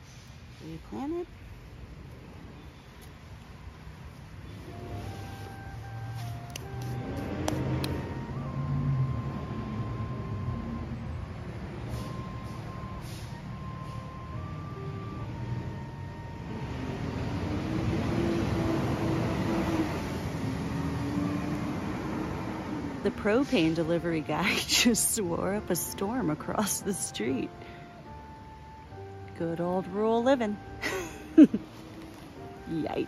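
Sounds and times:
distant truck engine humming: 0:00.0 - 0:33.0.

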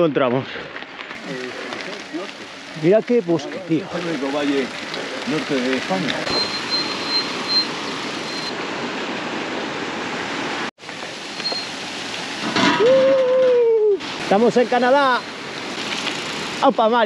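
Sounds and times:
steady outdoor rushing noise: 0:01.0 - 0:11.7, 0:14.0 - 0:17.0.

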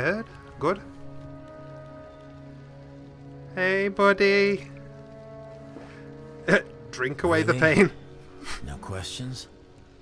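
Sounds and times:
campfire crackling: 0:00.0 - 0:10.0
soft music with sustained chords: 0:00.0 - 0:10.0.

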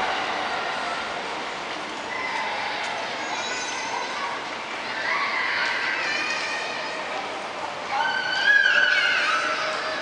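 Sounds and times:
shopping mall hubbub: 0:00.0 - 0:10.0.

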